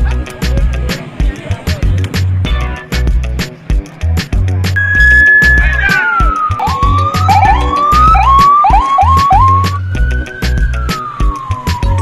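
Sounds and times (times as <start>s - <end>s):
background music with steady beat: 0.0s - 12.0s
police siren wailing: 4.8s - 12.0s.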